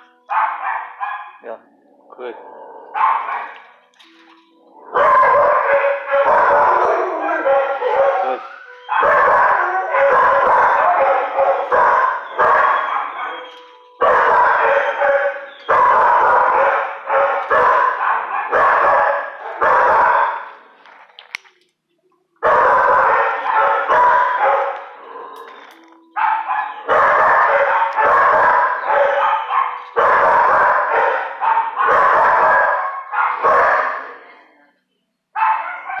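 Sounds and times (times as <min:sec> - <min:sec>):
dogs barking rapidly: 0:00.3 - 0:01.4, 0:02.8 - 0:03.7, 0:04.9 - 0:20.6, 0:22.4 - 0:25.5, 0:26.2 - 0:34.2, 0:35.4 - 0:36.0.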